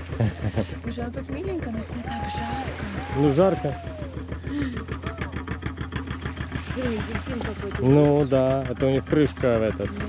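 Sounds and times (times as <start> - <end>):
boat engine chugging: 0.0 - 10.0.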